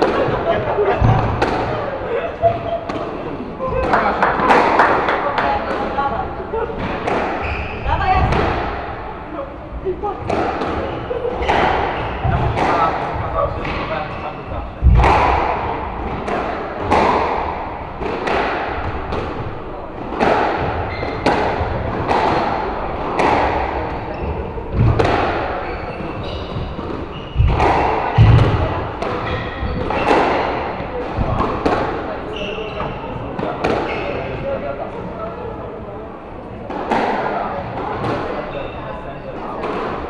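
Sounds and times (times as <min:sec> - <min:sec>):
squash ball cracking off rackets: 0:14.8 - 0:26.1, 0:26.7 - 0:32.0.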